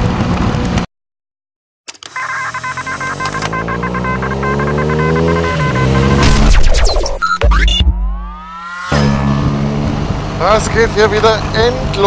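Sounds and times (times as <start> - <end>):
motorcycle riding noise: 2.2 - 6.4, 8.6 - 12.0
rapid electronic beeps: 2.2 - 9.1
rising electronic drone: 3.2 - 10.4.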